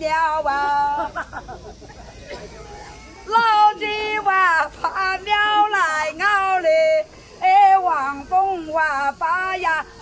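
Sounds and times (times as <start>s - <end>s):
woman singing unaccompanied: 0.0s - 1.2s, 3.2s - 10.0s
singer breathing: 7.1s - 7.4s.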